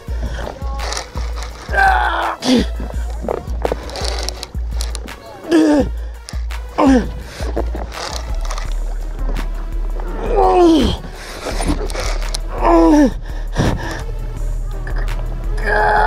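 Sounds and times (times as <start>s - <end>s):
background music: 0.0s - 16.0s
man groaning: 1.6s - 2.8s, 12.5s - 13.2s.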